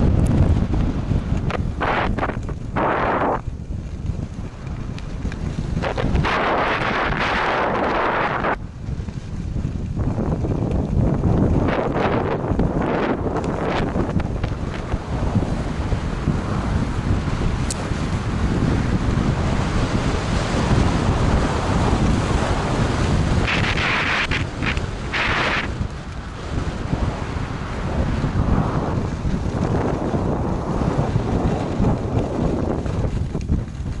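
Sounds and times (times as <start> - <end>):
wind rumbling on microphone: 0.0 - 34.0
skis scraping on snow: 0.1 - 34.0.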